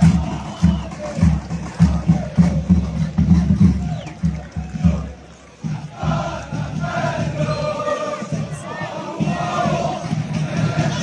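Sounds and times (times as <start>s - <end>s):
crowd chanting: 0.0s - 11.0s.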